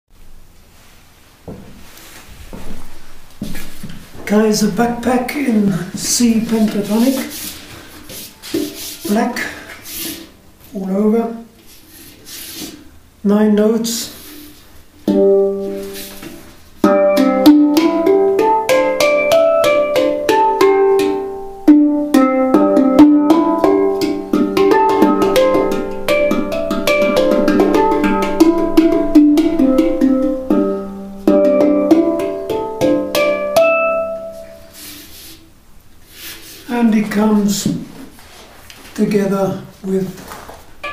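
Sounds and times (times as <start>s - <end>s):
handpan melody: 6.6s - 10.6s, 15.0s - 35.4s.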